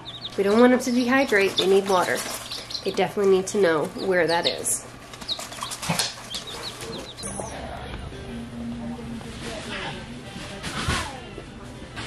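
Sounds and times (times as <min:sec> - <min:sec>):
baby chicks peeping: 0:00.0 - 0:08.2
steady low hum: 0:00.0 - 0:12.0.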